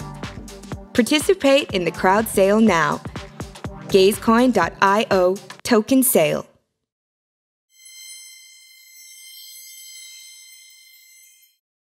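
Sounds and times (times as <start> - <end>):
high bell-like chime: 7.8 - 11.6.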